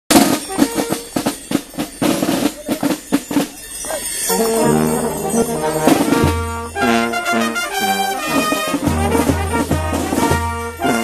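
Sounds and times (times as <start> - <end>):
fast drum beating and rolls: 0.1 - 11.0.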